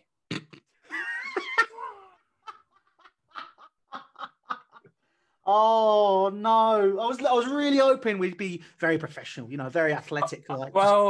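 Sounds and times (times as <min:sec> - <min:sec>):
men laughing: 0:00.8 - 0:05.0.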